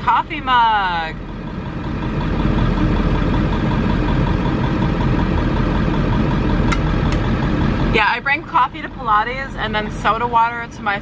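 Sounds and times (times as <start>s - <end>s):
van engine idling: 0.0s - 11.0s.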